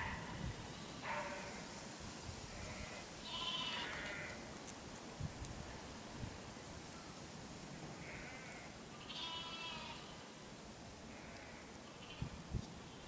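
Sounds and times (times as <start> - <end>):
lambs bleating: 2.6 - 4.4, 8.0 - 10.2.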